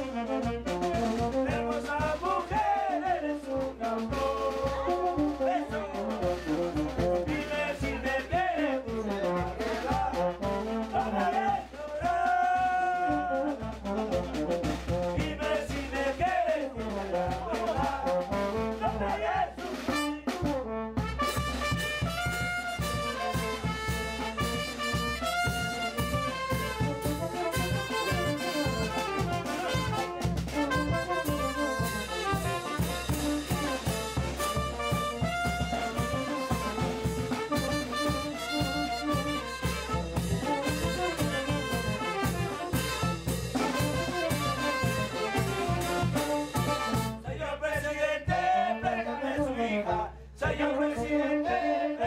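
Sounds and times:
saxophones and trumpet melody: 0.0s - 47.6s
steady bass drum beat: 0.0s - 49.5s
tuba bass line: 0.0s - 52.0s.

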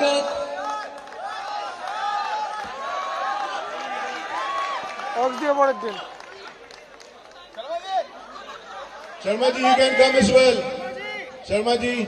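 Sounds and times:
crowd chatter: 1.4s - 12.0s.

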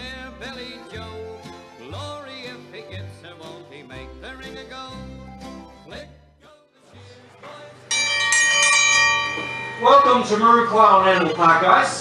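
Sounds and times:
country music: 0.0s - 12.0s
bell ringing loudly: 7.9s - 12.0s.

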